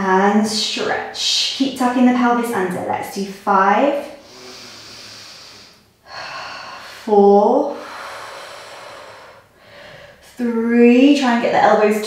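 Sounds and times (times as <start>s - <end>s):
woman breathing with effort: 4.2s - 7.1s, 7.7s - 10.3s.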